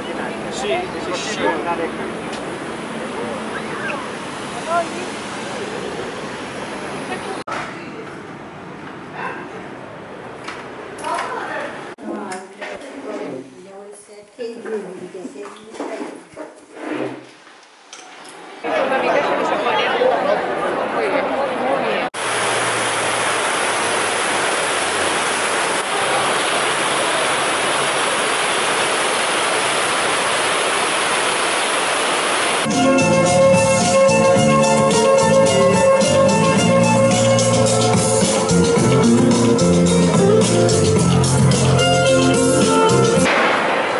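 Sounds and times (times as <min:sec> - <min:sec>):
fountain water spray: 0:01.6 - 0:07.4, 0:22.2 - 0:34.8
amplified guitar music: 0:32.7 - 0:43.3.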